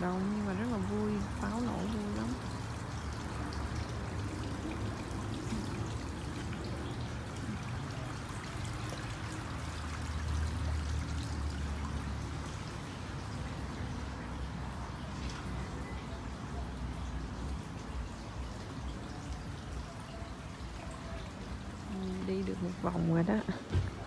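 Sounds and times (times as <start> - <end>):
fountain water trickling and splashing: 0.0 - 24.0.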